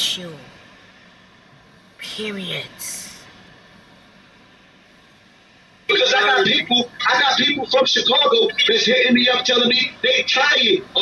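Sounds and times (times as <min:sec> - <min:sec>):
man talking from phone video: 0:05.9 - 0:11.0.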